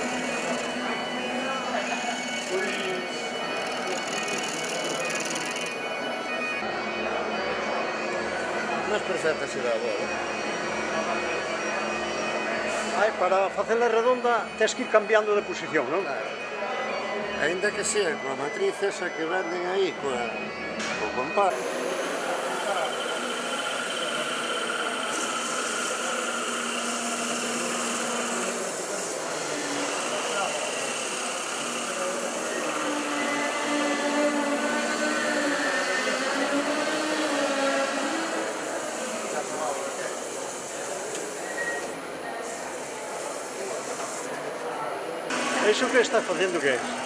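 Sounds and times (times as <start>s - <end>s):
wood lathe humming: 0.0s - 6.6s, 21.2s - 41.9s.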